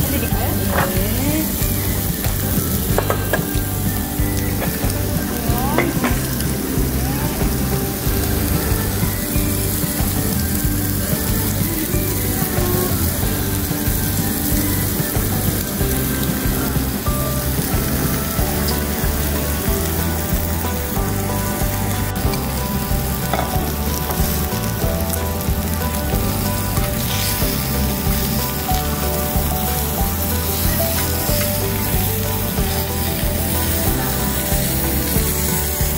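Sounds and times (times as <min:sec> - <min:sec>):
background music: 0:00.0 - 0:35.9
meat and vegetables sizzling on grill: 0:00.0 - 0:35.9.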